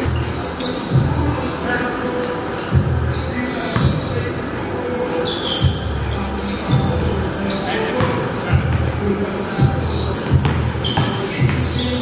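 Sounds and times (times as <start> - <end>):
basketball bouncing on gym floor: 3.8 - 4.0, 9.6 - 11.9.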